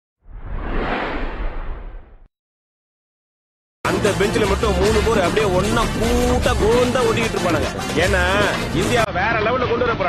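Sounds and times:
whoosh sound effect: 0.2 - 2.3.

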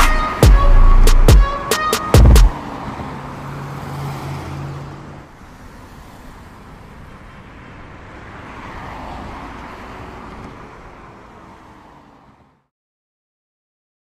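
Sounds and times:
passing cars: 0.0 - 12.7.

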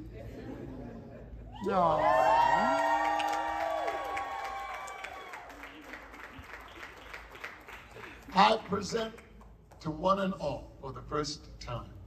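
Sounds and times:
crowd cheering and whooping: 1.5 - 7.1
people clapping: 2.2 - 9.9.

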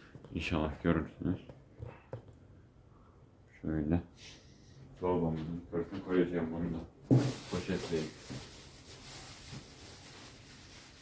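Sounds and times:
plastic bag crinkling: 7.1 - 11.0.

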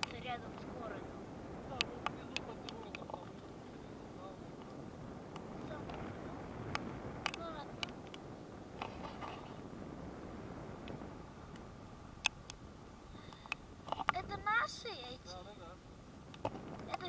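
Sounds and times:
wind rushing past microphone: 0.0 - 17.0
sharp clicks: 6.7 - 8.2.

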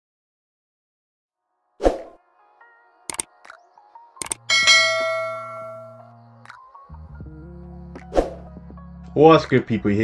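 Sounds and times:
quick clicks: 3.1 - 3.6, 4.2 - 4.5
notification bell chime: 4.5 - 6.0.

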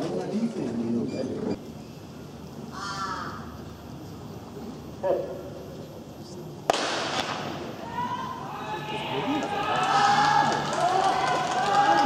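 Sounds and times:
quiet stadium background: 0.0 - 12.0
crow-like caw: 2.7 - 3.5.

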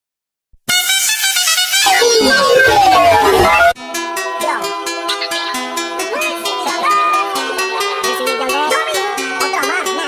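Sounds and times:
dance music: 0.7 - 3.8.

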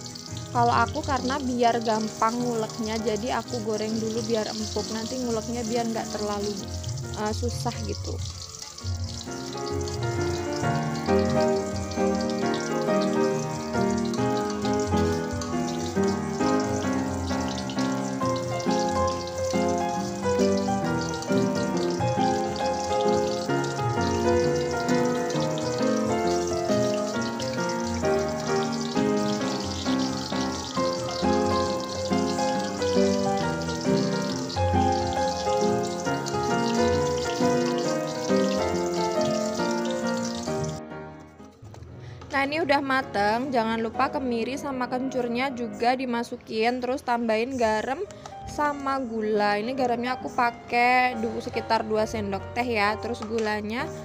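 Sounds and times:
shallots and garlic sizzling in oil: 0.0 - 40.8, 46.5 - 54.0
background music: 0.0 - 54.0.

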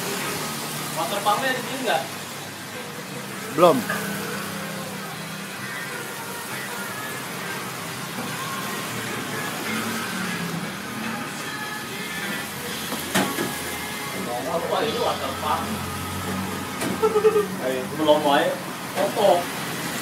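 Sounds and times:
background chatter: 0.0 - 7.1, 8.4 - 19.6
music: 0.0 - 20.0.

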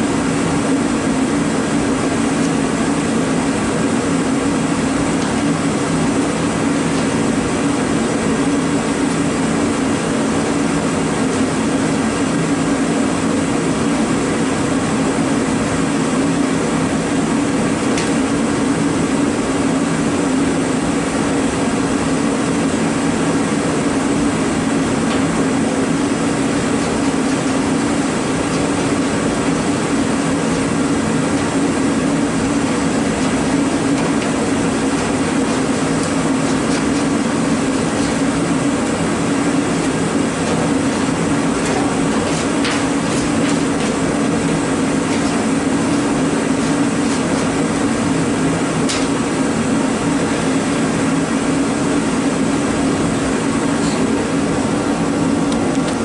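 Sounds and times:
machine hum: 0.0 - 56.0.

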